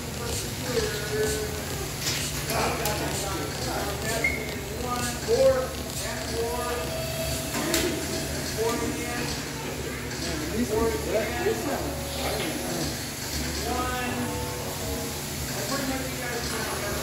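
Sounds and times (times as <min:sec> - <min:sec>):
people talking indistinctly: 0:00.0 - 0:17.0
steady low hum: 0:00.0 - 0:17.0.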